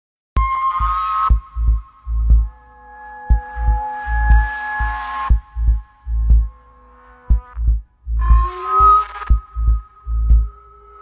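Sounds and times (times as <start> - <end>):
deep bass thumps: 1.3 - 2.5, 3.3 - 6.6, 7.3 - 8.5, 9.3 - 10.6.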